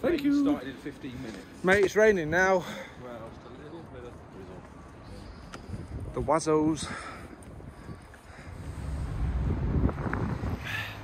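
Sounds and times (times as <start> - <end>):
wind buffeting microphone: 3.7 - 11.0.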